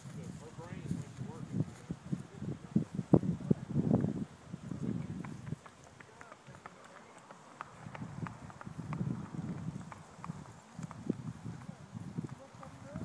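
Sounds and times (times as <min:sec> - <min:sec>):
faint indistinct talk: 0:00.0 - 0:07.9
horse hooves walking on grass: 0:00.0 - 0:13.0.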